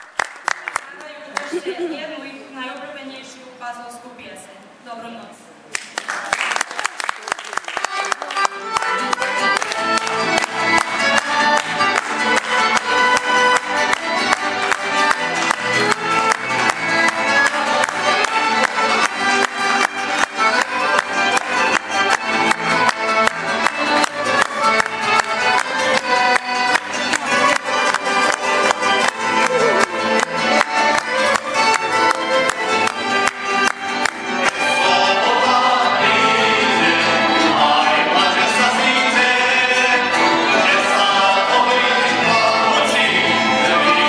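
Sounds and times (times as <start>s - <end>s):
applause: 0.0s - 1.6s, 5.7s - 34.6s
accordion: 7.4s - 44.0s
folk band playing lively tune: 7.4s - 44.0s
violin: 7.6s - 44.0s
keyboard: 7.8s - 44.0s
strummed guitars: 7.8s - 44.0s.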